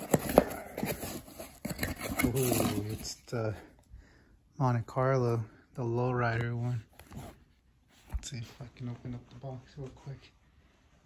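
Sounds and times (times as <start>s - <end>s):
cardboard scrapes and knocks: 0.0s - 3.2s.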